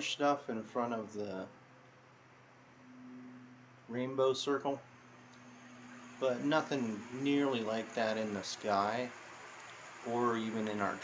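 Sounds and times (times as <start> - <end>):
faint background hum: 0.0 - 11.0
low flat tone: 0.0 - 11.0.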